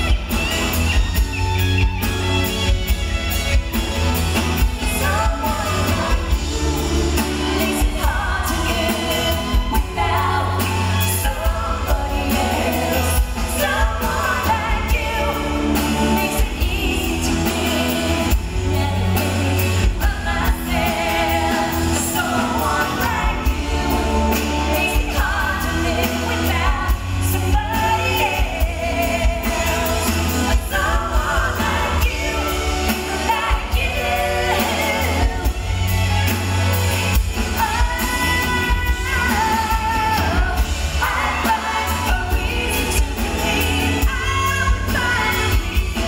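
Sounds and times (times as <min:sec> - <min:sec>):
bass: 0:00.0 - 0:46.0
drums and cymbals: 0:00.0 - 0:46.0
woman singing lead: 0:00.0 - 0:46.0.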